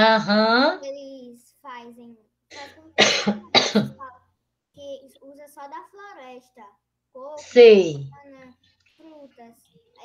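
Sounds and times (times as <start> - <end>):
person coughing: 2.5 - 4.0.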